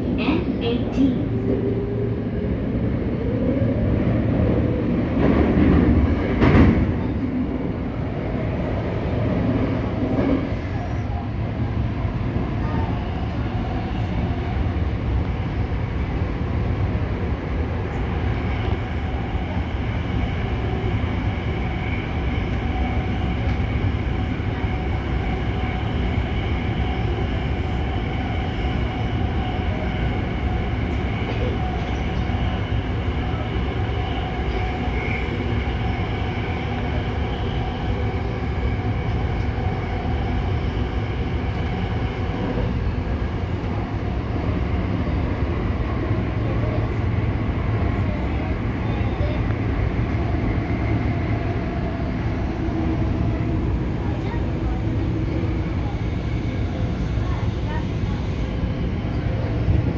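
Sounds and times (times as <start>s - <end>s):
subway train rumble on rails: 0.0s - 59.9s.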